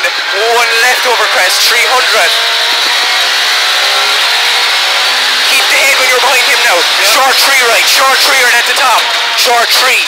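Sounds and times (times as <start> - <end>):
car engine pulling hard: 0.0 - 10.0
road and tyre noise: 0.0 - 10.0.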